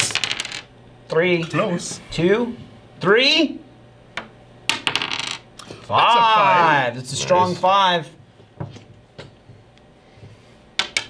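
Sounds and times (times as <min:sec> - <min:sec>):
die clattering on wooden table: 0:04.7 - 0:05.4, 0:10.8 - 0:11.0.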